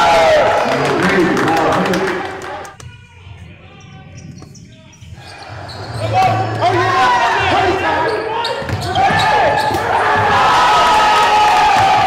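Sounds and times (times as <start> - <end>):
crowd noise: 0.0 - 12.0
voices echoing in hall: 0.0 - 12.0.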